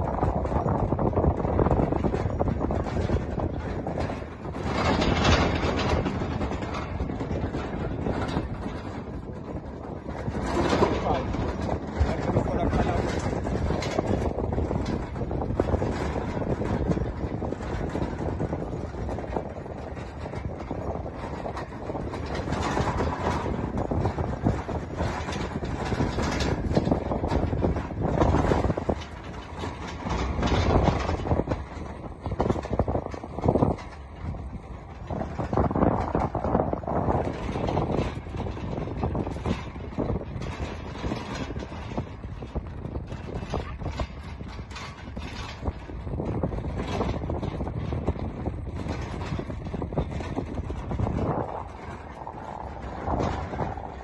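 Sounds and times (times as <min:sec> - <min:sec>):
vehicle engine and road rumble: 0:00.0 - 0:54.0.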